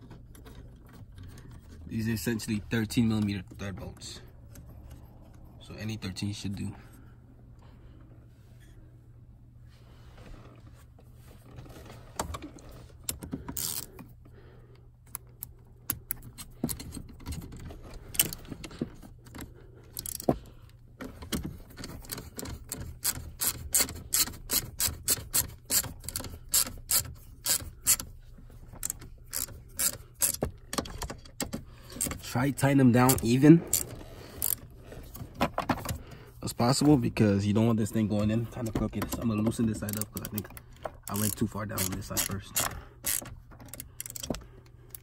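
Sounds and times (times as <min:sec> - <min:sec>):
hand ratchet clicking: 0:13.1 - 0:14.1, 0:19.3 - 0:20.4, 0:21.8 - 0:34.6, 0:38.2 - 0:45.0.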